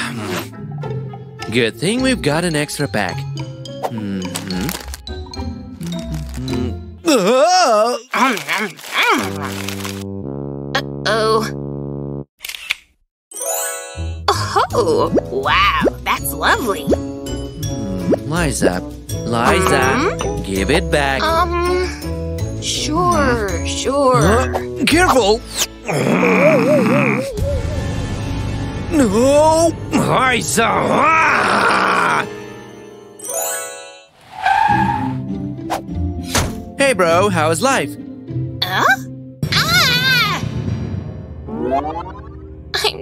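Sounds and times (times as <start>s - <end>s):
cartoon background music: 0.0s - 7.8s, 13.3s - 43.0s
springy boing sound effects: 41.5s - 42.4s.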